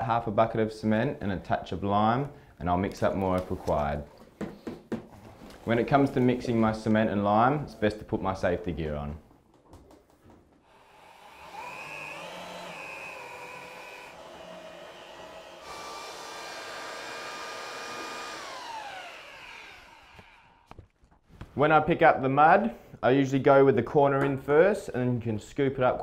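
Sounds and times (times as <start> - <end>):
electric paddle mixer whining: 10.7 - 20.7.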